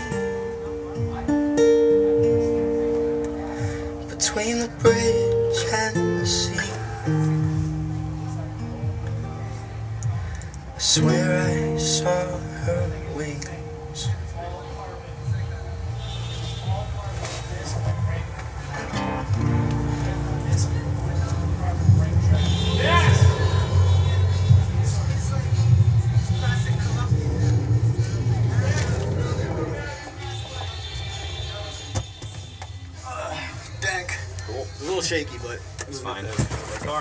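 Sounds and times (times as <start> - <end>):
acoustic guitar plucked notes: 0.0 - 15.7, 18.8 - 29.5
strummed guitar chord: 18.9 - 24.8.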